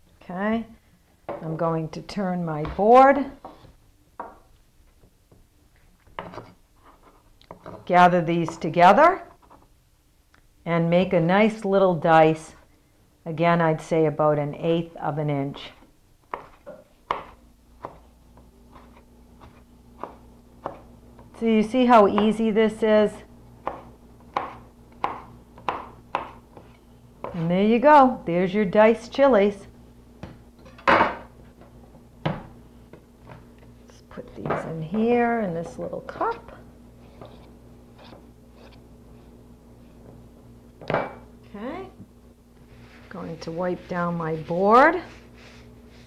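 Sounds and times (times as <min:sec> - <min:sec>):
cutting board scraping on counter: 0:16.3 - 0:18.0, 0:37.0 - 0:38.8
knife chopping on cutting board: 0:16.3 - 0:18.1, 0:18.7 - 0:20.9, 0:23.6 - 0:27.4.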